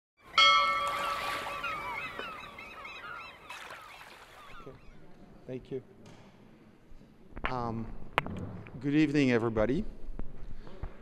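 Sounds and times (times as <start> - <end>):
short bird calls: 0.3 - 5.0.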